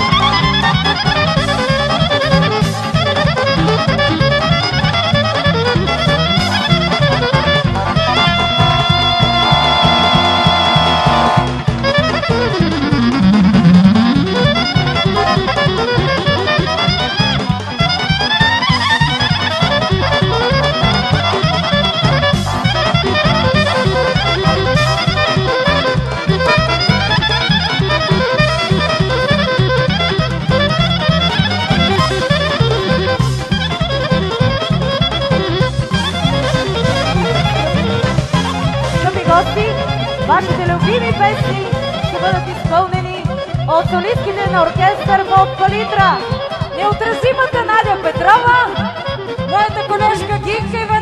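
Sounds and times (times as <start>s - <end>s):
folk orchestra playing fast melody: 0.0s - 51.0s
steady drum beat: 0.0s - 51.0s.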